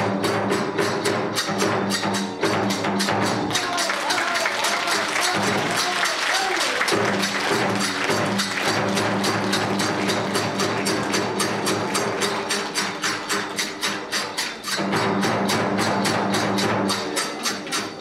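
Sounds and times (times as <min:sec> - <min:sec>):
barrel drum beating: 0:00.0 - 0:18.0
hand cymbals: 0:00.0 - 0:18.0.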